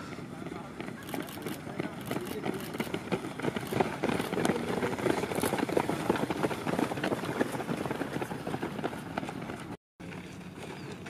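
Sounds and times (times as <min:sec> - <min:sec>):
runners' footfalls on dirt: 0:00.0 - 0:11.0.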